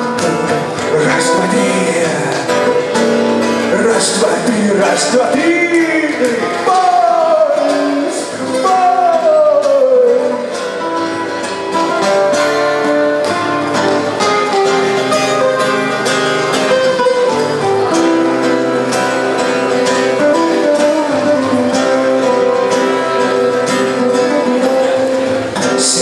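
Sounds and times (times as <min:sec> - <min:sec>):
acoustic guitar strumming: 0:00.0 - 0:26.0.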